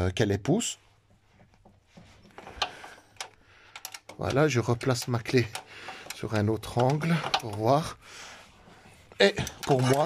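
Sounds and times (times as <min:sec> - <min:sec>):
socket ratchet clicking: 0:02.6 - 0:07.7.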